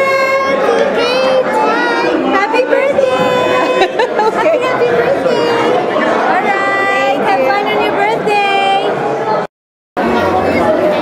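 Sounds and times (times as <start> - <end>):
party chatter: 0.0 - 11.0.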